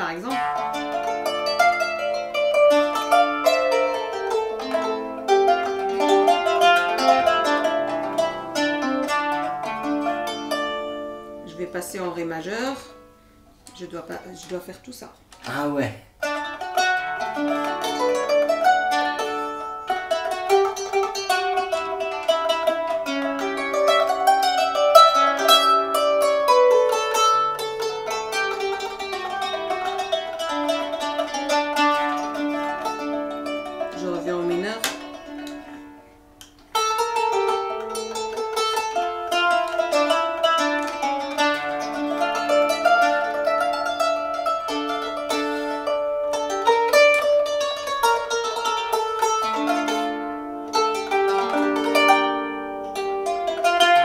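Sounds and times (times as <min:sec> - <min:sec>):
plucked zither melody: 0:00.0 - 0:15.4, 0:16.2 - 0:54.0.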